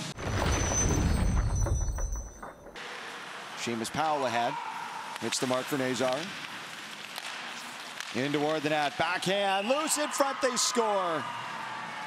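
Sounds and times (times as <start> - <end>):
skates carving ice: 4.0 - 9.3
hockey sticks and puck clicking: 5.1 - 8.8.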